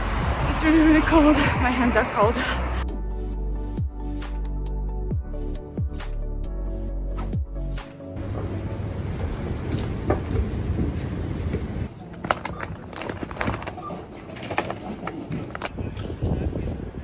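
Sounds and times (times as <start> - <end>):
shopping clicking and knocking: 8.2 - 15.8
low street rumble: 8.2 - 17.0.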